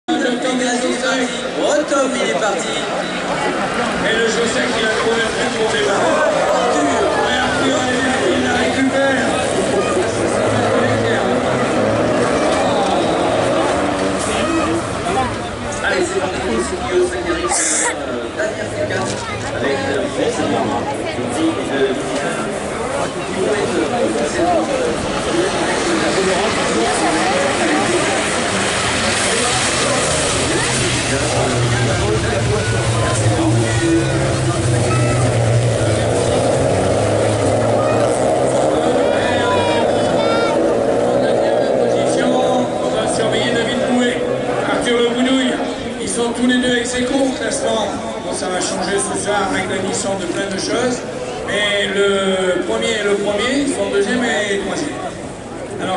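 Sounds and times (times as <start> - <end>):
people talking: 0.0 - 55.9
racing car engines: 0.1 - 55.9.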